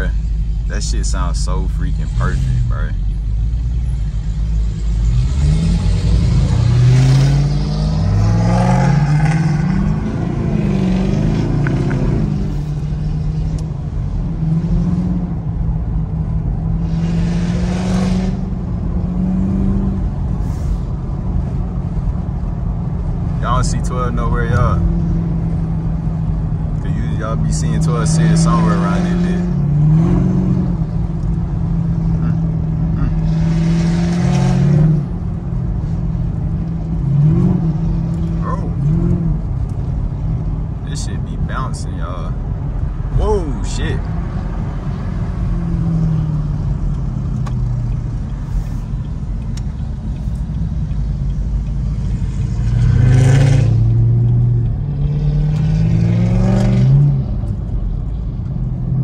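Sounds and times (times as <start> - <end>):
car engine revving and droning: 0.0 - 59.0.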